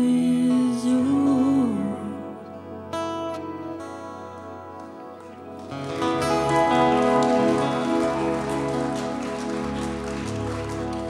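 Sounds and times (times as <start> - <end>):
strummed acoustic guitar: 5.2 - 11.0
live band playing slowly: 5.6 - 11.0.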